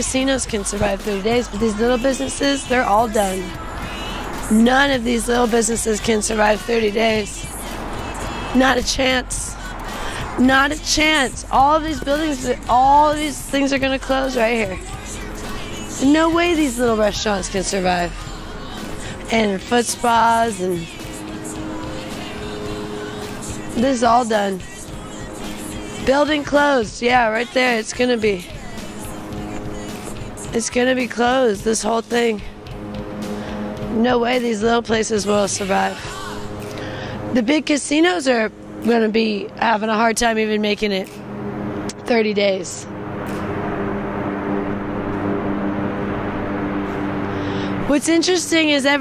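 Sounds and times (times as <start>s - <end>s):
faint music with held notes: 0.0s - 49.0s
low mechanical drone: 0.0s - 49.0s
street traffic noise: 0.0s - 49.0s.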